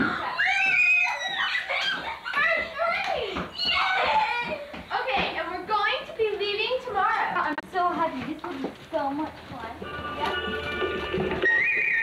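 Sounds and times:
girls shrieking: 0.0 - 4.8, 11.4 - 12.0.

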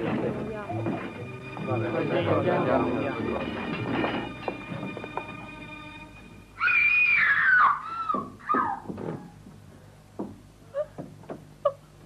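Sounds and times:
woman screaming: 6.6 - 8.9.

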